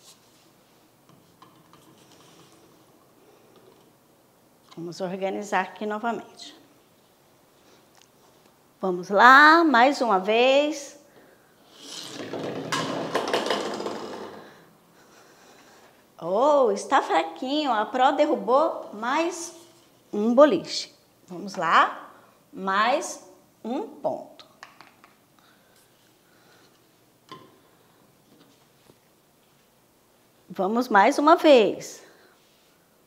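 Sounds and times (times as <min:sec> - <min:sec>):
plastic ball rolling on wood: 0:11.8 - 0:14.5
plastic bowling pins clattering: 0:12.2 - 0:14.6.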